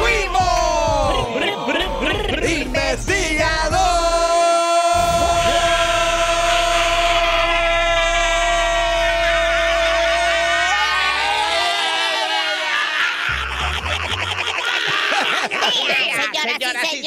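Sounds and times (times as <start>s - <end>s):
background music with steady bass: 0.0s - 4.4s, 5.0s - 11.7s.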